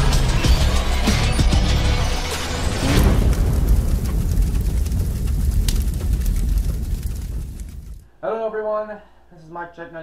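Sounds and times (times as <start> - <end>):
deep rumbling boom: 2.6 - 8.0
faint crackles: 3.0 - 8.0.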